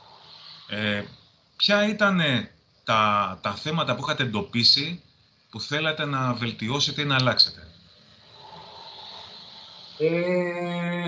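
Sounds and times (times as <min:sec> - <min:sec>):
faint room tone hiss: 0:00.0 - 0:11.0.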